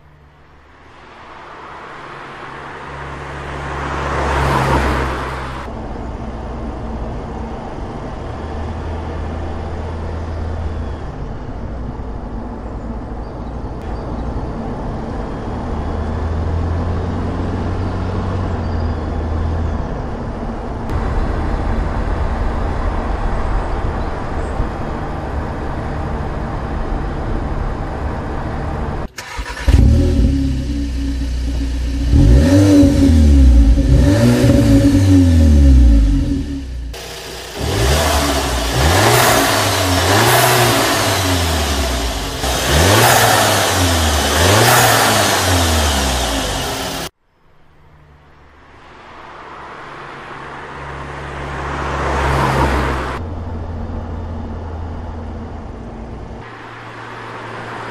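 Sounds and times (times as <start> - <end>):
car engine driving drone: 0.0 - 57.9
car engine revving: 20.9 - 47.2.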